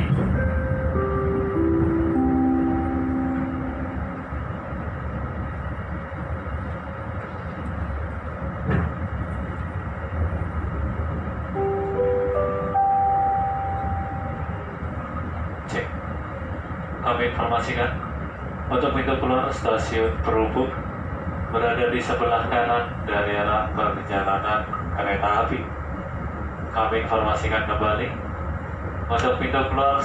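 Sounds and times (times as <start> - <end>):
train running rumble: 0.0 - 30.0
melody of sustained notes: 0.2 - 5.1, 11.5 - 15.3.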